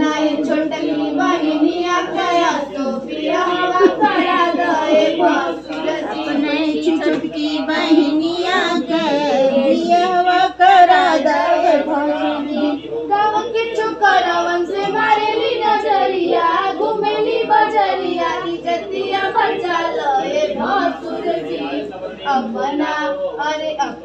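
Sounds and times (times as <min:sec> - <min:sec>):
women singing folk song: 0:00.0 - 0:23.5.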